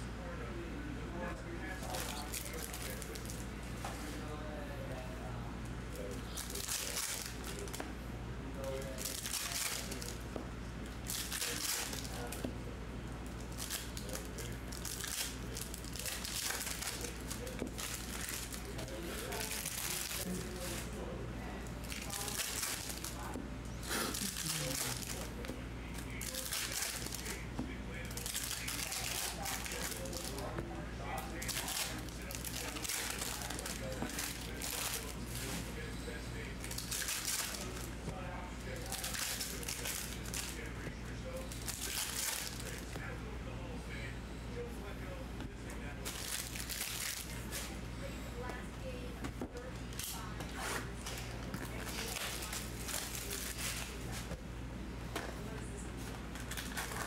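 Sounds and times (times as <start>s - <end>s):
low electrical hum: 0.0s - 57.0s
foil wrappers crinkling: 1.6s - 3.4s, 6.0s - 7.9s, 8.6s - 10.2s, 11.0s - 12.5s, 13.2s - 21.0s, 21.8s - 23.4s, 24.1s - 30.5s, 31.1s - 38.1s, 38.7s - 40.8s, 41.4s - 43.0s, 46.0s - 47.7s, 49.9s - 54.3s, 56.3s - 57.0s.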